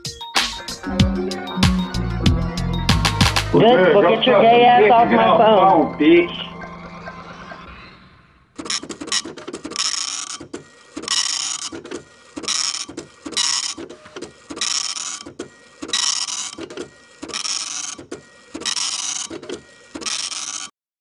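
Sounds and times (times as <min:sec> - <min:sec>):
printer mechanical clatter: 0:08.6 - 0:20.7.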